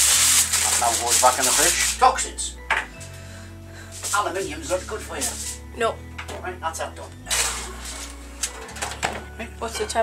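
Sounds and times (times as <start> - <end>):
kitchen paper rustling: 0.0 - 2.2, 4.0 - 5.6, 7.3 - 8.6.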